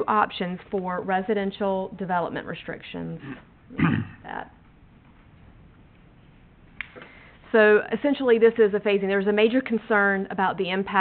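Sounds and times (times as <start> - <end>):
woman coughing: 3.2 - 4.3.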